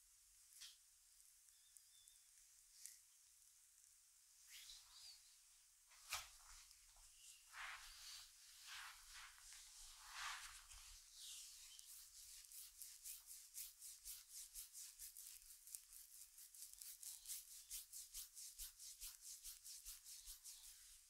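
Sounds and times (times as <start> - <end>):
palm rubbing oiled skin: 7.5 - 21.0.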